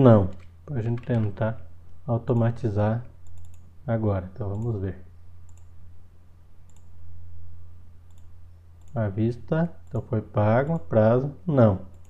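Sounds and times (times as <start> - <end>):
low electrical hum: 0.0 - 12.0
faint computer mouse click: 5.5 - 5.8, 6.6 - 6.9, 8.1 - 9.0.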